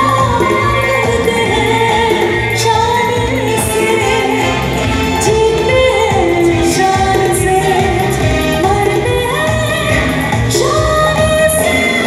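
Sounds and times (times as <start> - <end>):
band with keyboards and beat: 0.0 - 12.0
woman singing: 0.0 - 12.0.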